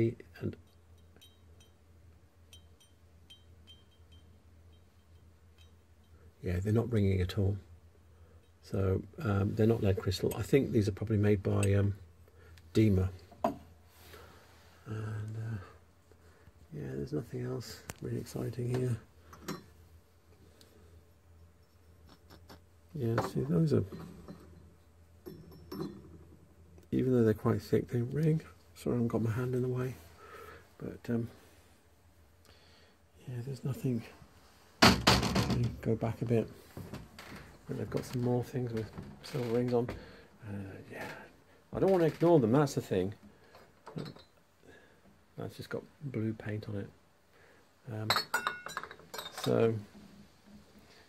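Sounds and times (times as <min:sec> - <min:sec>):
glass tumblers ringing: 0:00.6 - 0:06.3, 0:25.2 - 0:26.2.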